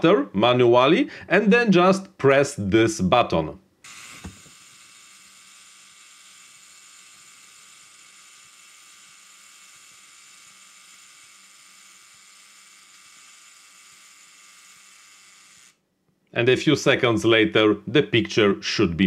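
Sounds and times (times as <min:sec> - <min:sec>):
camera self-timer whirring: 0:03.8 - 0:15.8.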